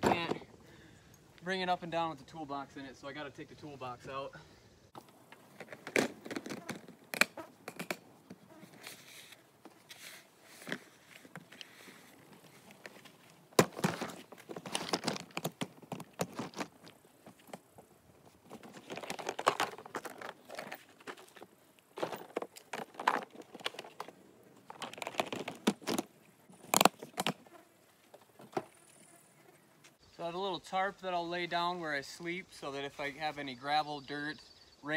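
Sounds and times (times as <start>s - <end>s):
plastic totes knocking and scraping: 0.0s - 0.6s, 5.0s - 27.4s.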